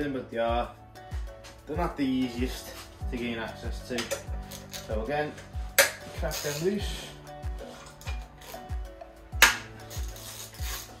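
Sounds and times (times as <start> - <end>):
background music with steady beat: 0.0 - 11.0.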